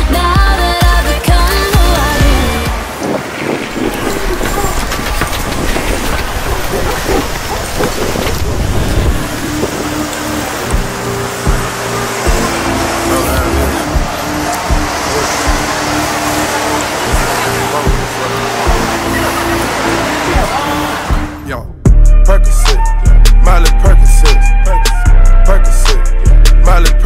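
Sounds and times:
music: 0.0s - 3.1s, 8.4s - 27.0s
traffic: 0.0s - 21.7s.

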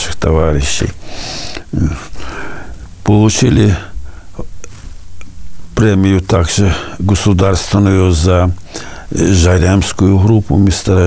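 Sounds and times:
man breathing in through nose: 1.0s - 2.8s, 8.6s - 9.1s.

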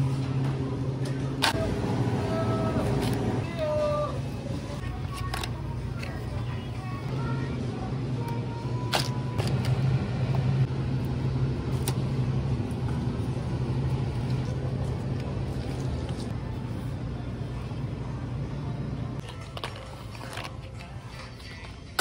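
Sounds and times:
supermarket rumble and hum: 0.0s - 22.0s.

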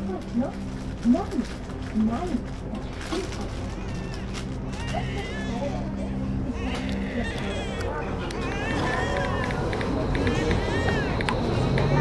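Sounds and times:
indistinct background voices: 5.6s - 12.0s.

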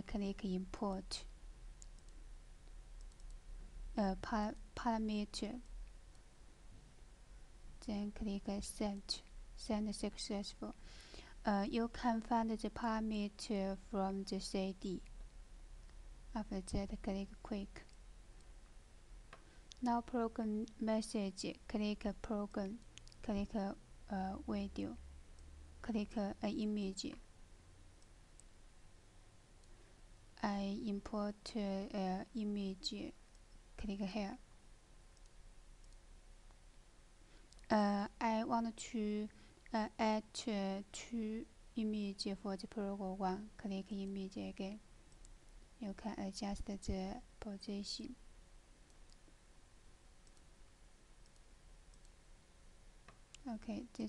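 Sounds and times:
computer mouse clicks: 1.8s - 3.4s, 22.6s - 23.6s, 35.1s - 36.6s, 48.8s - 49.2s, 50.2s - 50.5s, 51.2s - 52.2s.

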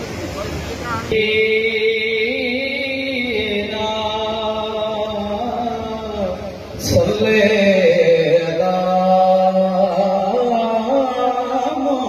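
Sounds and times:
man chanting: 1.1s - 12.0s.

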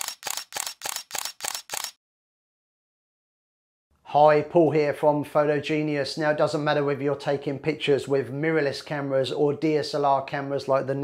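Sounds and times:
camera shutter clicks: 0.0s - 2.0s.

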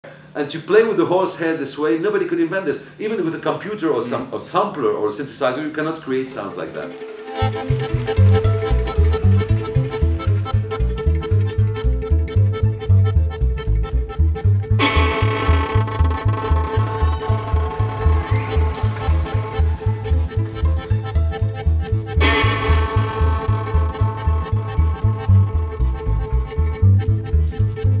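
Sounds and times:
fiddle sustained tone: 6.1s - 28.0s
band with quick bass beat: 6.7s - 28.0s.

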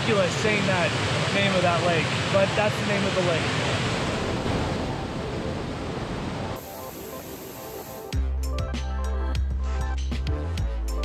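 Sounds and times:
waterfall rushing over boulders: 0.0s - 8.1s.

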